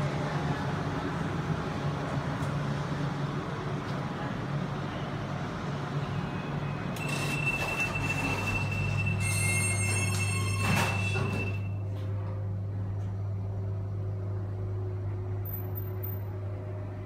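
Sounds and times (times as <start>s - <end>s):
low motor hum: 11.7s - 17.0s.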